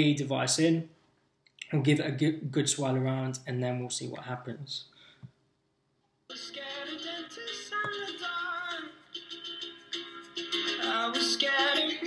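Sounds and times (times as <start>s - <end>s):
pop song on small speaker: 6.3s - 12.0s.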